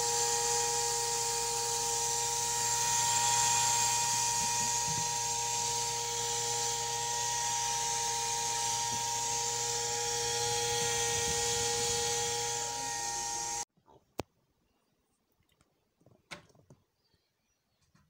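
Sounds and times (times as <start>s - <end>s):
small electric motor whining: 0.0s - 13.7s.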